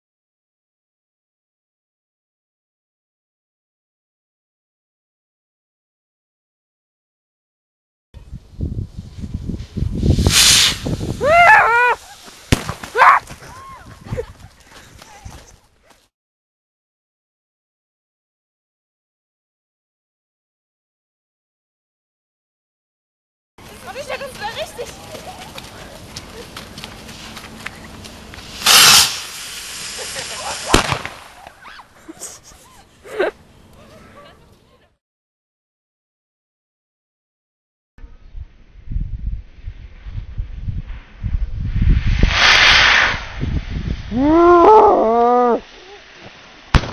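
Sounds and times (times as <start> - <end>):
rocket igniting with loud hiss: 8.8 - 13.0, 26.9 - 31.6, 39.5 - 44.2, 45.6 - 46.9
excited voices calling out: 11.2 - 12.1, 12.9 - 13.9.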